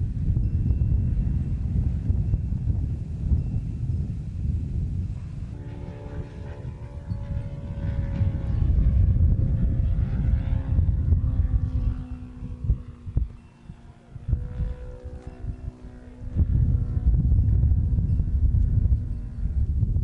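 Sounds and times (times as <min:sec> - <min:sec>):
model airplane engine droning: 0:00.0 - 0:20.0
wind rumble on microphone: 0:00.0 - 0:20.0.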